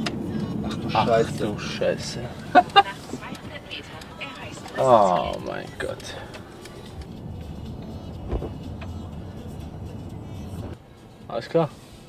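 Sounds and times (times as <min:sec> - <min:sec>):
car tyres and engine rumble: 0:00.0 - 0:12.0
car bump: 0:08.1 - 0:09.1.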